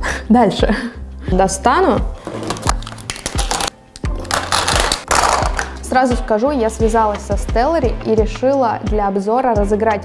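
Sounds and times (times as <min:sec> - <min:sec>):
background music: 0:00.0 - 0:10.0
plastic items clicking on table: 0:02.3 - 0:05.9.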